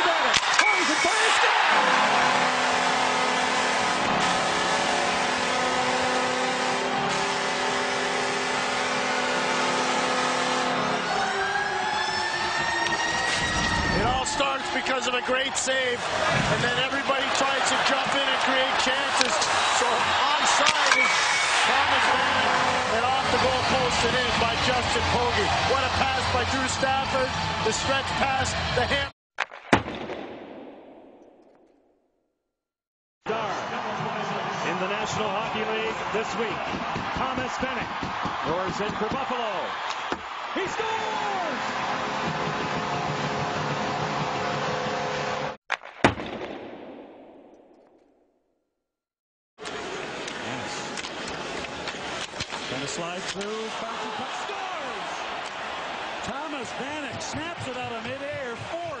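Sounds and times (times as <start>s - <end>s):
hockey crowd cheering: 0.0s - 29.1s, 33.3s - 45.6s, 49.6s - 59.0s
arena goal horn: 0.6s - 13.2s, 20.9s - 27.2s.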